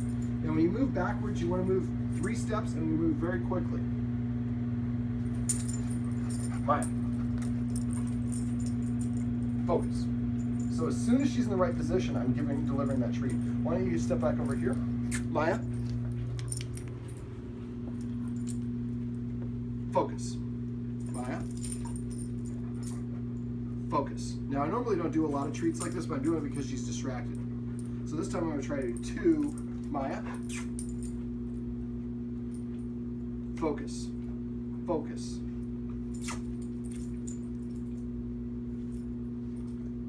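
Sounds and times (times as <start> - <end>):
low electrical hum: 0.0 - 40.0
dog collar jingling: 5.3 - 19.0, 21.0 - 23.2, 24.8 - 31.6, 36.0 - 38.1.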